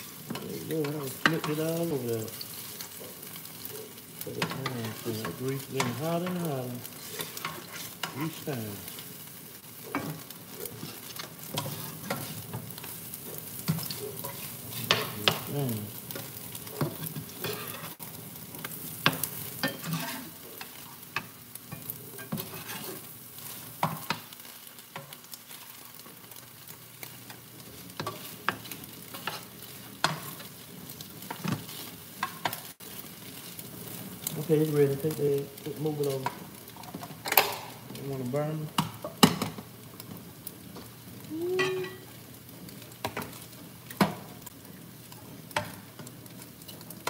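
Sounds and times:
pancakes sizzling in pans: 0:00.0 - 0:47.0
metal spatulas tapping and scraping pans: 0:00.3 - 0:03.7, 0:09.9 - 0:15.5, 0:16.1 - 0:18.0, 0:19.0 - 0:23.1, 0:28.0 - 0:30.6, 0:41.6 - 0:42.0.

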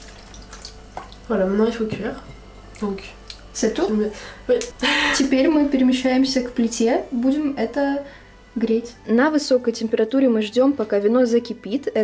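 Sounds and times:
woman speaking: 0:01.3 - 0:12.0.

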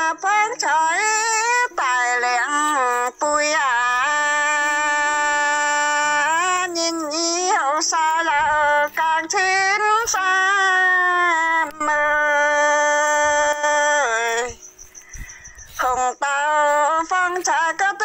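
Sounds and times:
woman singing folk song: 0:00.0 - 0:18.0.

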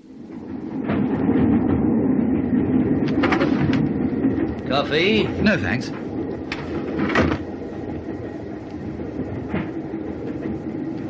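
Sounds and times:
train rumble inside carriage: 0:00.0 - 0:11.0.

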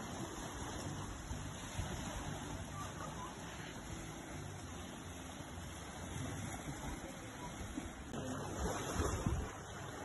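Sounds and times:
small waves lapping on sand: 0:00.0 - 0:10.0
wind noise on microphone: 0:08.6 - 0:09.9.

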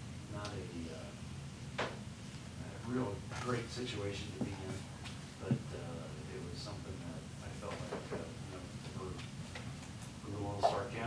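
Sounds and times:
low steady hum: 0:00.0 - 0:11.0
soft murmuring voices: 0:02.6 - 0:09.2, 0:10.2 - 0:11.0.

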